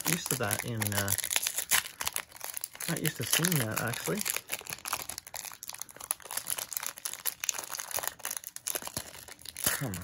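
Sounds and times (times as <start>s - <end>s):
foil wrapper crinkling and tearing: 0.0s - 10.0s.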